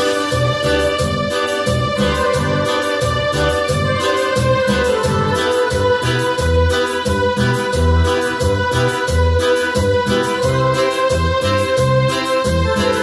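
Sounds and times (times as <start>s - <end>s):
bass line: 0.0s - 13.0s
electronic keyboard organ chord: 0.0s - 13.0s
fast percussion beat: 0.0s - 13.0s.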